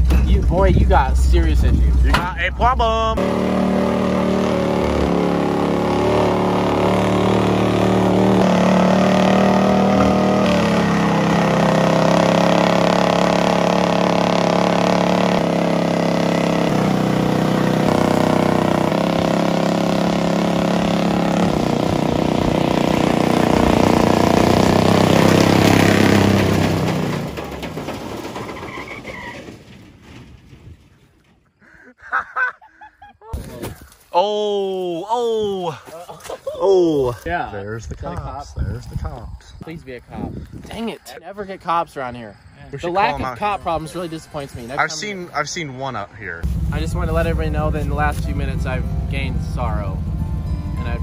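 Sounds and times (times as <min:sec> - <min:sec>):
truck engine running under load: 0:03.2 - 0:30.2, 0:46.4 - 0:51.0.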